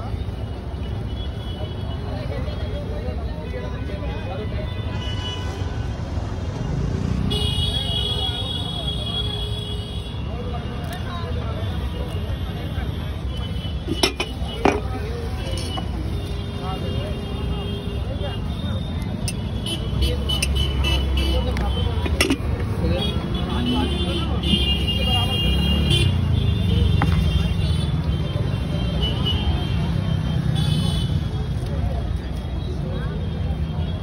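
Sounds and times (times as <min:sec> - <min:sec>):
vehicle engine rumbling: 0:12.8 - 0:17.5, 0:18.4 - 0:28.0.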